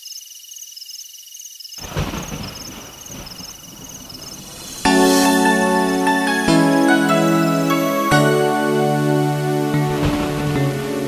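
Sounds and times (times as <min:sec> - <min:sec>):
thunder rolling: 0:01.8 - 0:07.2, 0:09.2 - 0:11.0
rain-like hiss: 0:01.8 - 0:11.0.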